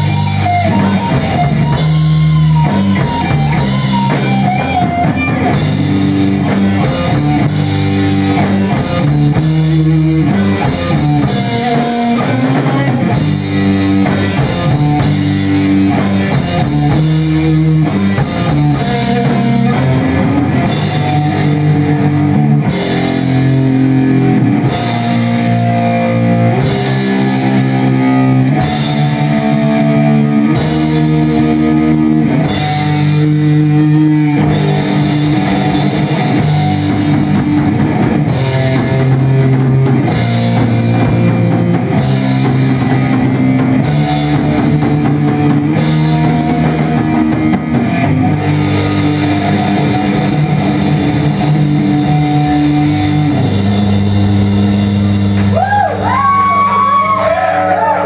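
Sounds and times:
drum kit with crashing cymbals: 0:00.0 - 0:57.8
distorted electric guitar chords: 0:00.0 - 0:58.0.

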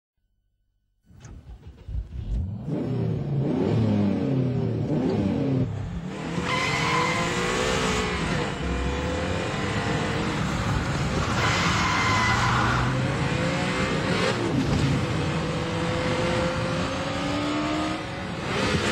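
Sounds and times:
car engine revving: 0:01.2 - 0:18.9
road and tyre noise: 0:01.2 - 0:18.9.

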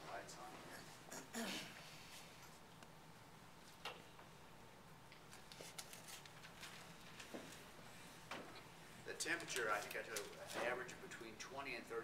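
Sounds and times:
paper sheets rustling: 0:05.3 - 0:07.6, 0:09.3 - 0:10.8.

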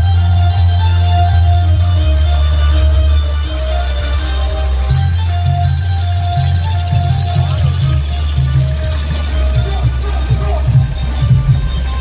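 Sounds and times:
electronic music with pulsing bass: 0:00.0 - 0:12.0.

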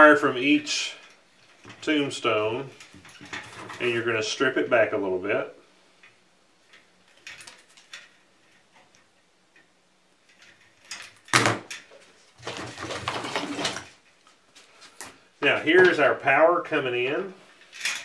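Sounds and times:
rustling scraping handling noise: 0:00.4 - 0:04.3, 0:10.2 - 0:16.1.

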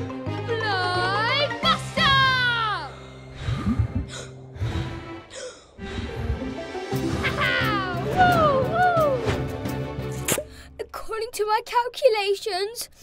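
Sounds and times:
cartoon background music: 0:00.0 - 0:11.1.

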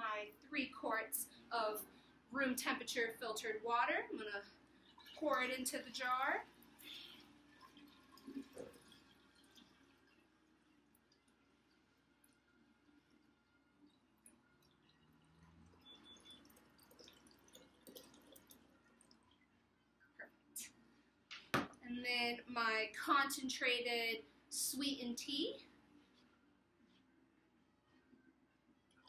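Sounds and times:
water pouring into glass jar: 0:04.7 - 0:19.5.

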